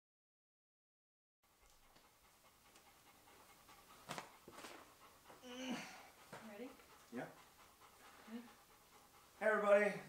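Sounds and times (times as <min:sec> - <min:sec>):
dog panting faintly: 0:01.4 - 0:10.0.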